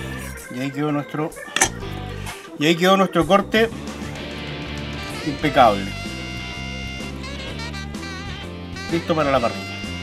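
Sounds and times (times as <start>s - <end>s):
jazzy instrumental music: 0.0s - 10.0s.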